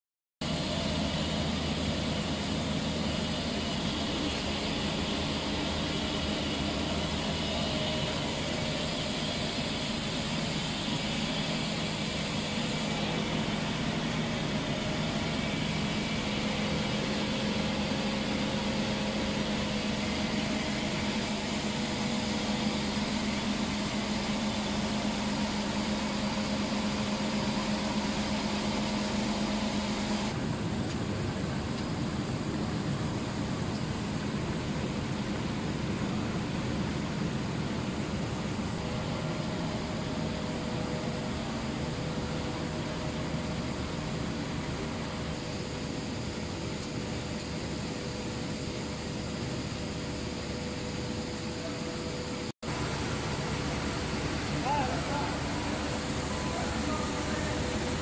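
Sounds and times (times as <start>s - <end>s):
industrial machinery drone: 0.4s - 58.0s.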